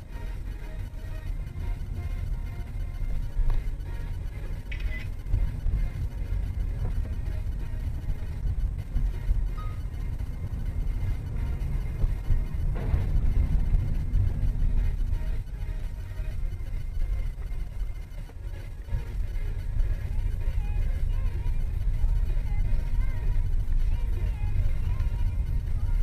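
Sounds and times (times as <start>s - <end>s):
car and road rumble: 0.0s - 26.0s
music playing: 0.0s - 26.0s.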